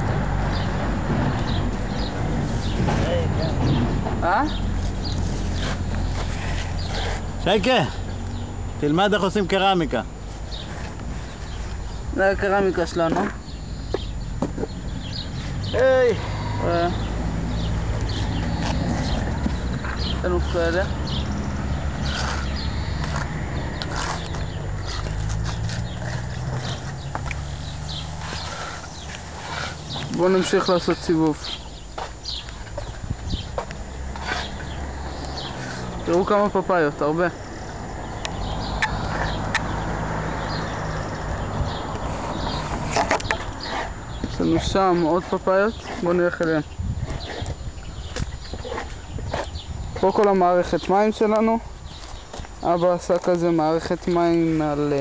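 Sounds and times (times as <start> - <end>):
footsteps: 22.0 - 36.3.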